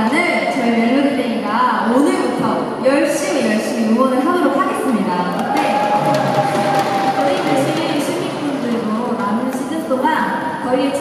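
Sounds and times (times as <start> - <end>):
audience cheering: 5.3 - 9.8
background music over sound system: 5.5 - 9.5.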